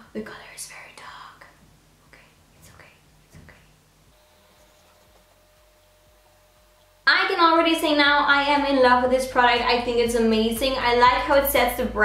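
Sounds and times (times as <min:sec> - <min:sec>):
breathy whispering: 0:00.1 - 0:03.8
soft mouth sounds: 0:00.7 - 0:03.8.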